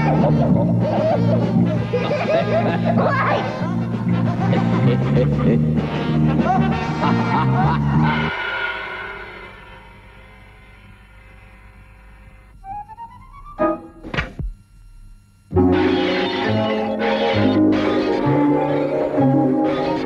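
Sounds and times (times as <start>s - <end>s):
cartoon music: 0.0s - 8.3s, 12.6s - 14.0s, 15.6s - 20.0s.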